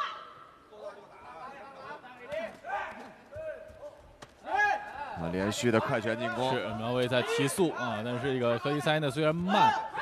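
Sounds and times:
voices shouting in arena: 4.4s - 10.0s.

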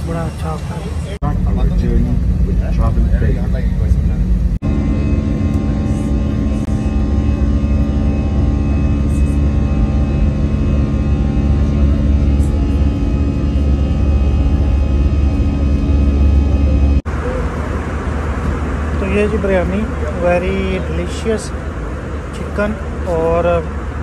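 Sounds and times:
airliner engine drone: 0.0s - 24.0s.

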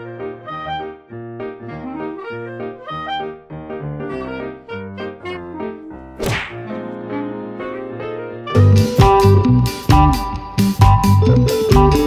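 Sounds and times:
whoosh and thwack effect: 6.2s - 6.7s.

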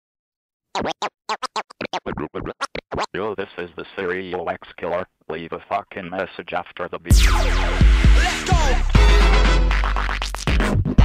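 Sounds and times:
record scratching: 0.8s - 5.0s, 7.1s - 11.0s.

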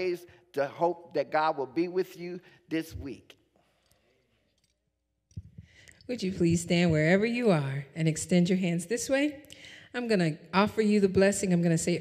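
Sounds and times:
microphone handling thumps and clicks: 5.3s - 7.3s.

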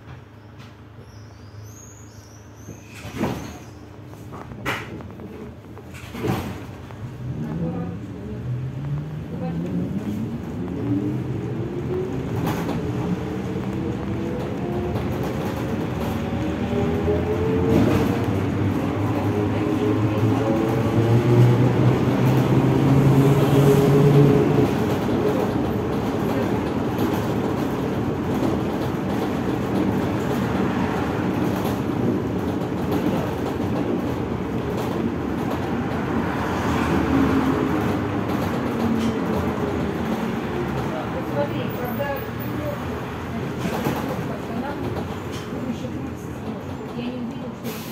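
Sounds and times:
road noise: 1.7s - 47.9s.

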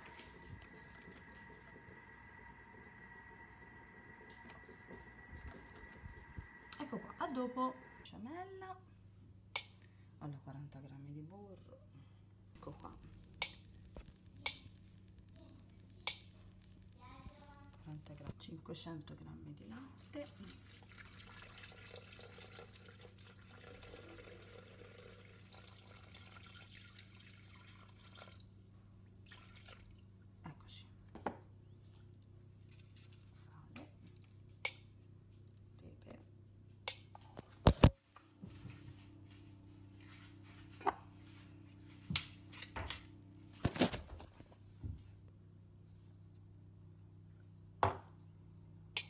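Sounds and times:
milk pouring into bowl: 0.0s - 7.0s, 20.0s - 28.6s, 29.2s - 30.1s
low steady hum: 0.0s - 49.0s.

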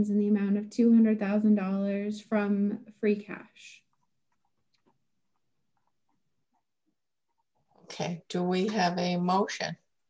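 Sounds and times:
woman speaking: 7.8s - 9.8s.

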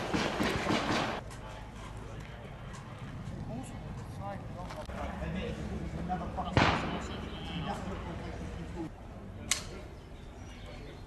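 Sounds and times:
distant rifle shot: 6.6s - 7.2s.

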